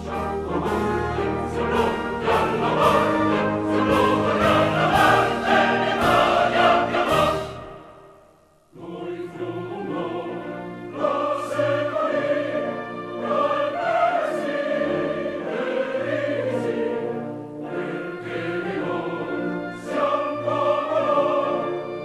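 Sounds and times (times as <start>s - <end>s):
choir with orchestra: 0.0s - 22.0s.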